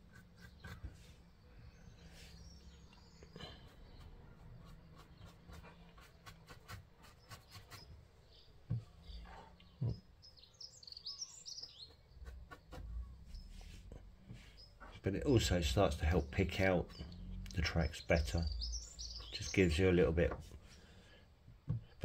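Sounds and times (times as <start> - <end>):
bird chirping: 0.1 - 21.1
paintbrush scratching scenery: 3.6 - 8.0, 11.6 - 17.2.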